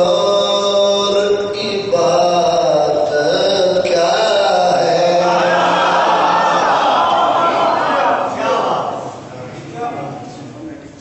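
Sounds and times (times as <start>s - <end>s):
man chanting melodic recitation: 0.0s - 6.0s.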